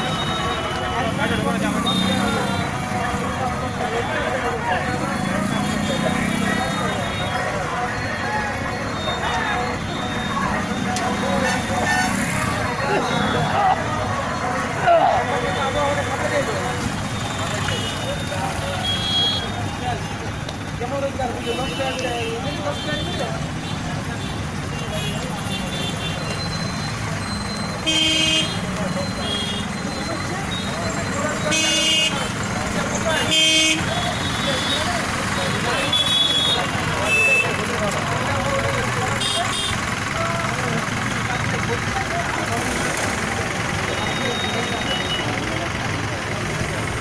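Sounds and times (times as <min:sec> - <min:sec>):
crowd talking: 0:00.0 - 0:47.0
motorbikes and cars moving: 0:00.0 - 0:47.0.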